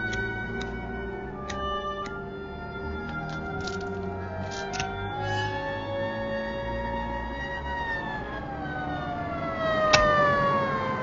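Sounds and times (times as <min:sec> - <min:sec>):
police siren winding down: 0:00.0 - 0:11.0.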